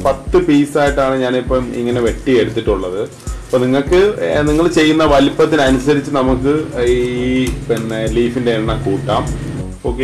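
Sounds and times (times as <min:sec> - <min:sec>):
steady bass beat: 0:03.9 - 0:10.0.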